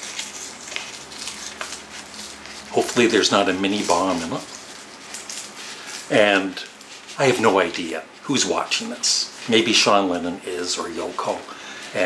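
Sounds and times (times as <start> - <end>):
paper envelope tearing: 0.0 - 7.7
sharp paper crackles: 0.0 - 7.8
paper rustling and crinkling: 0.0 - 12.0.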